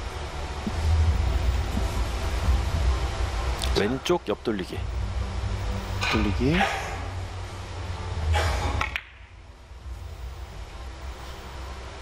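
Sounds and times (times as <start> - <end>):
balls rolling low hum: 0.0 - 12.0.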